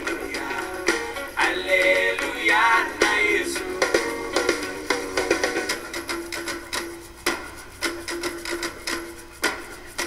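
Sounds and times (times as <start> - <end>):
hand percussion strokes: 0.0 - 10.0.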